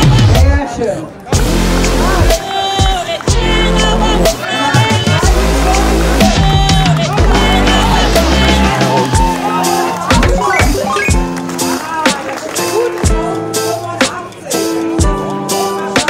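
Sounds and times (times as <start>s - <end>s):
music with heavy bass line: 0.0s - 0.6s, 1.4s - 11.7s
person singing: 1.8s - 11.0s, 14.5s - 16.0s.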